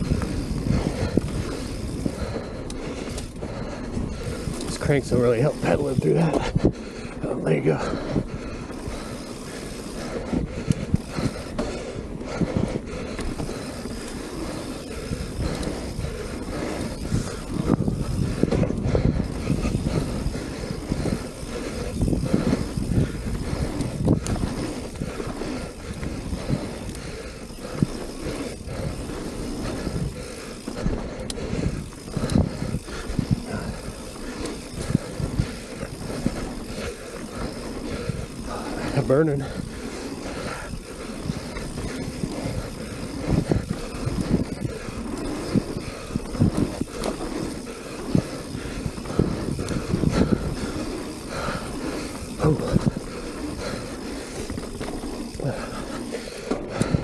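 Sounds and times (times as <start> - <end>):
bike rattling over bumps: 0.0 - 57.0
bike tyres rolling on dirt: 0.0 - 57.0.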